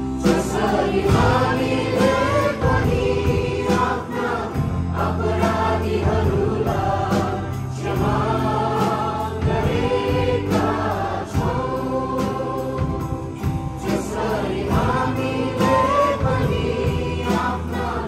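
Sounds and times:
congregation singing: 0.0 - 18.0.

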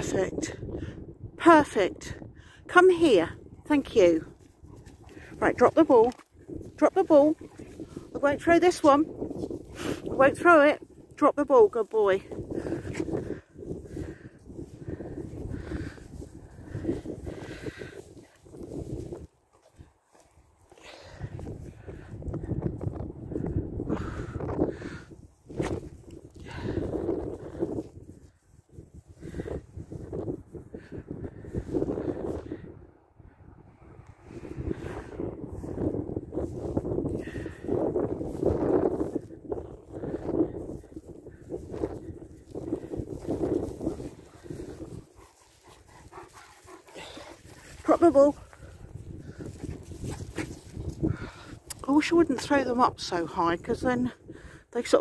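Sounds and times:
dogs vocalising: 45.1 - 47.5.

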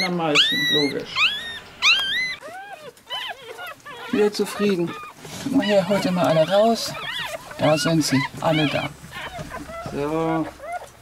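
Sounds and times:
puppy squealing: 0.0 - 11.0
puppy whimpering: 0.0 - 11.0.

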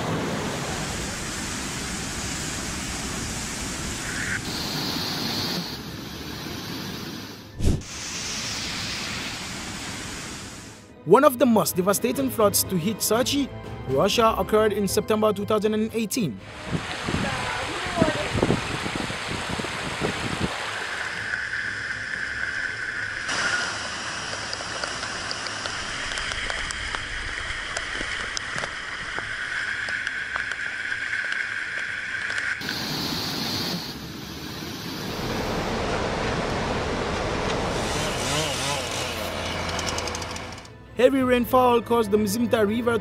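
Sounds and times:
floodwater rushing: 0.0 - 10.8, 16.4 - 40.3.

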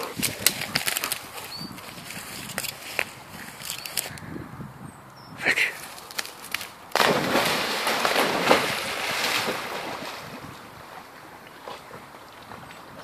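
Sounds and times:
dog swimming and splashing: 5.8 - 13.0
dog splashing into water: 5.9 - 12.9.

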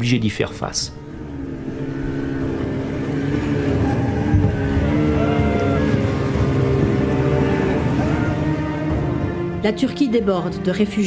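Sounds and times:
outboard motor running: 1.0 - 9.6.

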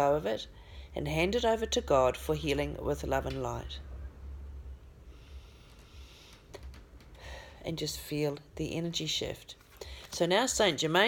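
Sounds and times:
low rumble: 0.5 - 7.6.

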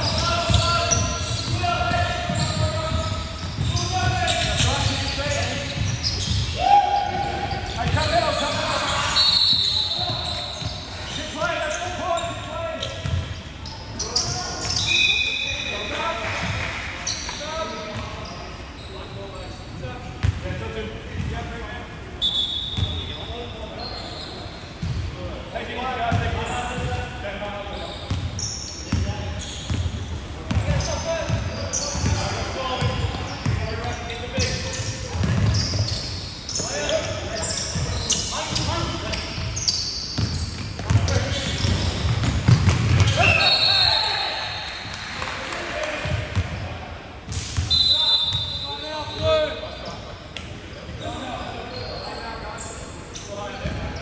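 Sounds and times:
sneakers squeaking on floor: 0.0 - 45.2, 45.9 - 54.0.

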